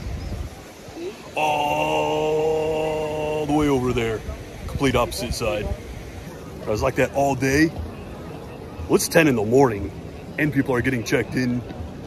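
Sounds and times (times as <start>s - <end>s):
man holding long vowel: 1.4s - 3.8s.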